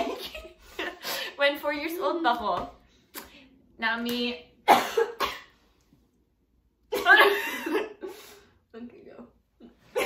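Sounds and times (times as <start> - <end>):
woman coughing: 4.7 - 5.5.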